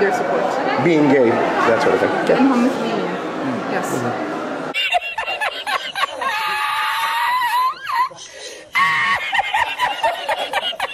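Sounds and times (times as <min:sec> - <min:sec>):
man laughing uncontrollably: 0:04.7 - 0:10.9.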